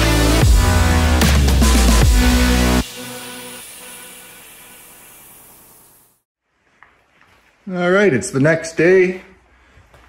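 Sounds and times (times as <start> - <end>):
spray gun hissing: 2.2 - 6.3.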